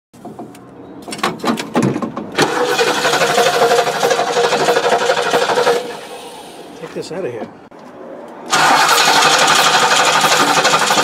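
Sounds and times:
car engine cranking: 1.1 - 6.3, 8.5 - 11.0.

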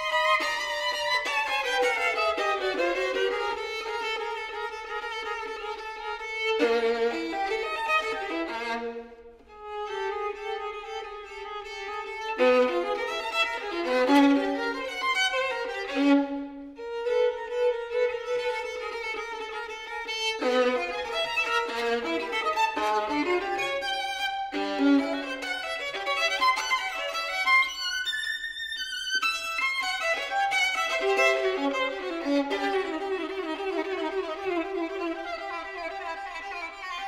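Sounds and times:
solo violin bowed: 0.0 - 37.0.

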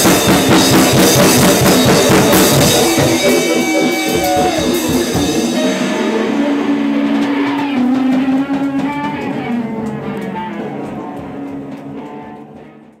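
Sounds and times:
electric guitars droning chord: 0.0 - 13.0.

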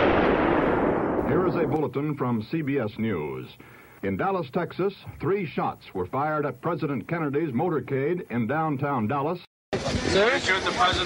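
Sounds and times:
echoing gunshot: 0.0 - 1.8
man speaking: 1.2 - 9.5.

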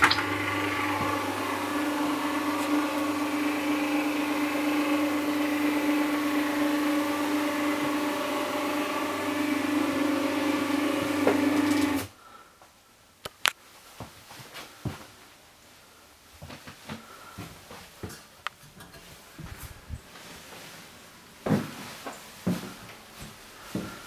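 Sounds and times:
roller blind motor humming: 0.0 - 12.1.

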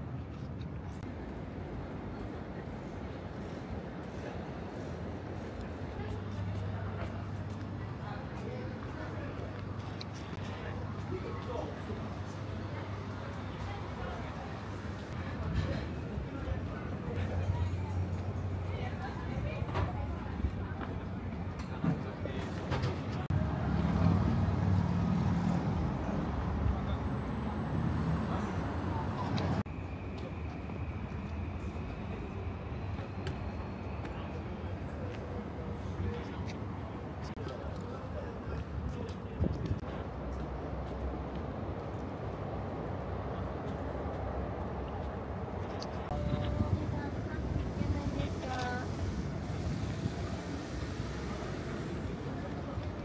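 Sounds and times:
low traffic rumble: 0.0 - 53.0
people talking: 5.9 - 23.6, 45.7 - 53.0.

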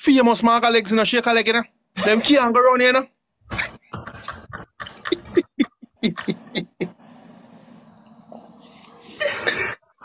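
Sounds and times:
men laughing hard: 4.1 - 7.0.

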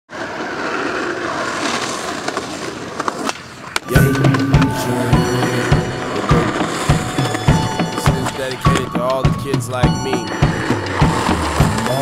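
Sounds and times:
skateboard clacks: 0.1 - 3.9
skateboard wheels rolling on asphalt: 0.1 - 3.9, 10.3 - 12.0.

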